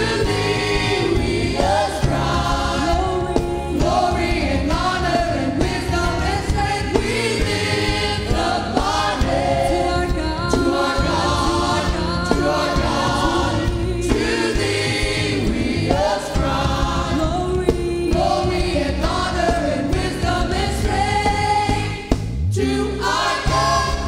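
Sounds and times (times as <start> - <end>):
bass guitar: 0.0 - 24.0
choir singing gospel: 0.0 - 24.0
drums: 0.0 - 24.0
keyboards: 0.0 - 24.0.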